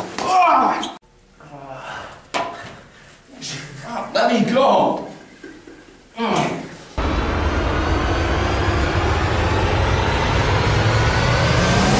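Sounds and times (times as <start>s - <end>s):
loud low rumbling: 7.0s - 11.9s.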